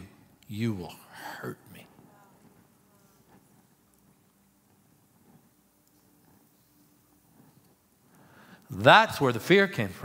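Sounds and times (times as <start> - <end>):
man whispering: 0.0 - 2.0
faint steady hum: 0.0 - 10.0.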